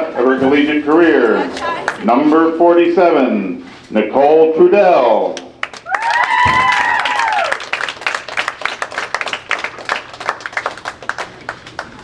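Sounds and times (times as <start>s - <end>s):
people clapping and cheering: 0.9s - 2.1s, 5.5s - 12.0s
woman whooping: 5.9s - 7.6s.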